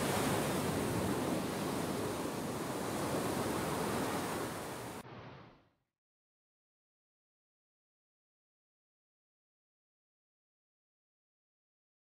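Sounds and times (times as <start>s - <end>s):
ocean waves washing in: 0.0s - 5.8s.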